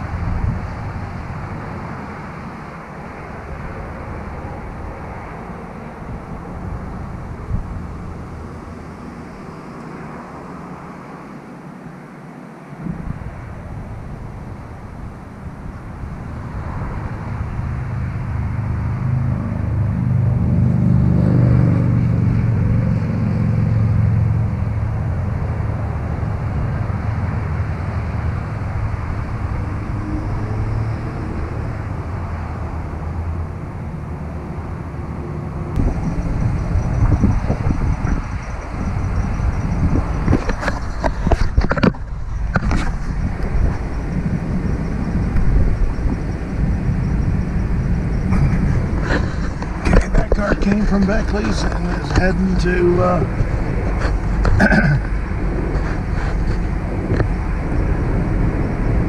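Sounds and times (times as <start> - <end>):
vehicle engine rumble: 0.0 - 12.0, 12.6 - 59.0
sharp crackles and knocks: 40.2 - 44.0, 48.3 - 52.4, 53.3 - 57.4.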